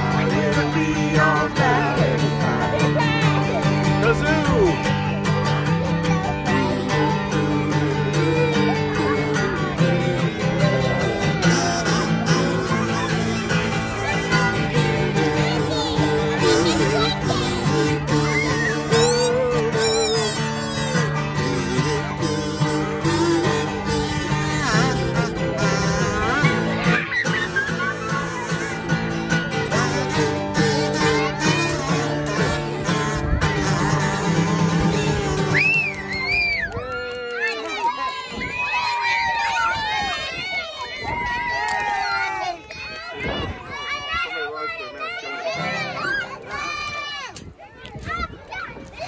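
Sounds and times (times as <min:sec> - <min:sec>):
people laughing: 0:00.0 - 0:36.2
strummed acoustic guitar: 0:00.0 - 0:36.3, 0:45.3 - 0:47.2
people talking: 0:00.0 - 0:49.0
kazoos buzzing a melody: 0:06.5 - 0:36.0.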